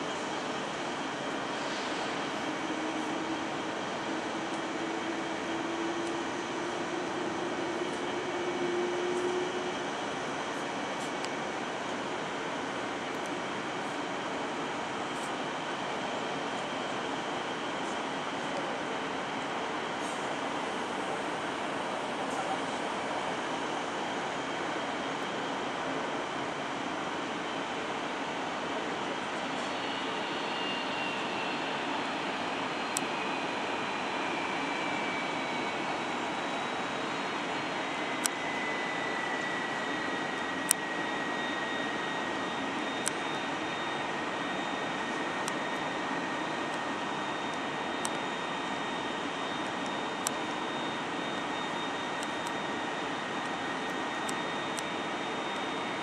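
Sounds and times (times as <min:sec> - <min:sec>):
jet engines taxiing: 0:00.0 - 0:56.0.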